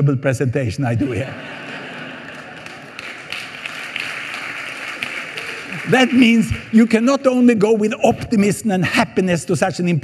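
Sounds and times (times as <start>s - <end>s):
audience laughing: 1.0s - 3.9s, 5.3s - 6.7s
audience murmuring: 1.0s - 6.9s
scattered claps: 2.2s - 7.0s.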